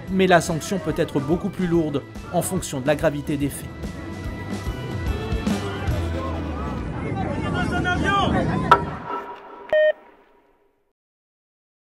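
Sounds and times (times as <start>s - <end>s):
loud electronic beep: 8.7s - 10.2s.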